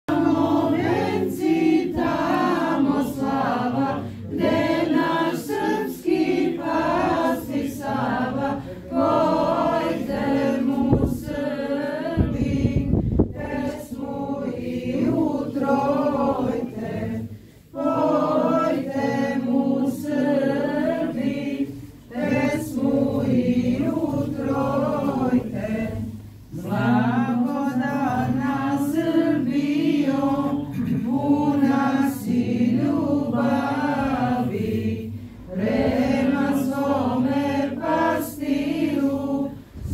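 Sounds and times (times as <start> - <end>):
young voices singing a hymn: 0.0 - 39.9
choir chanting: 0.1 - 39.9.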